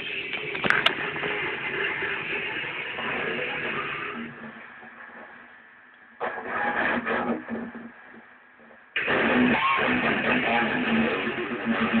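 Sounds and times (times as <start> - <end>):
distorted electric guitar: 0.0 - 5.6, 6.2 - 12.0.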